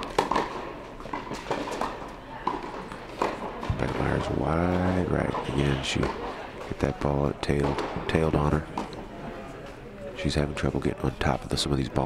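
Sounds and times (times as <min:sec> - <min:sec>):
racket striking tennis ball: 0:00.0 - 0:06.7
tennis ball bouncing: 0:00.0 - 0:06.8, 0:07.5 - 0:09.0.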